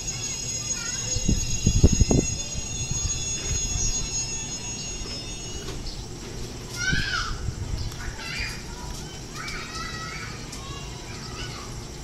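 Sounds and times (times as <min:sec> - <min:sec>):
electric train rumbling: 0:00.0 - 0:12.0.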